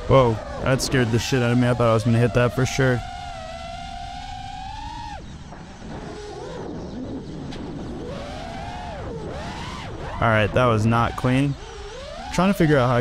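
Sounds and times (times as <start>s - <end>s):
drone propellers whining: 0.0s - 13.0s.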